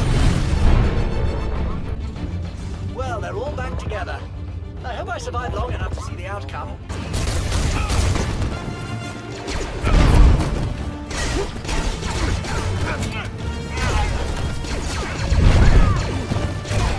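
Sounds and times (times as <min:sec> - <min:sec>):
blaster fire: 0:00.0 - 0:01.3, 0:06.9 - 0:08.6, 0:09.3 - 0:13.0, 0:13.7 - 0:16.9
orchestral music: 0:00.0 - 0:16.9.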